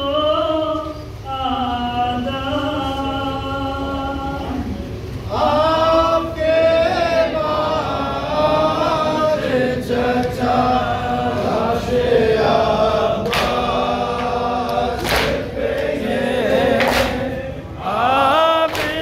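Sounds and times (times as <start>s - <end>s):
men chanting a lament in unison: 0.0s - 19.0s
hands slapping chests: 15.0s - 15.4s.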